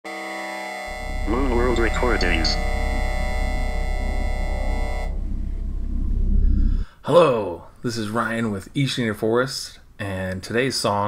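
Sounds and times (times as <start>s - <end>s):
synthesizer chord: 0.1s - 6.9s
deep low drone: 0.9s - 7.0s.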